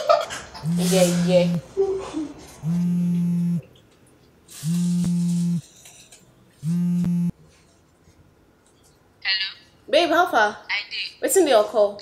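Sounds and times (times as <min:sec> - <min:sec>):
mobile phone vibrating: 0:00.6 - 0:01.7, 0:02.6 - 0:03.6, 0:04.6 - 0:05.6, 0:06.6 - 0:07.4.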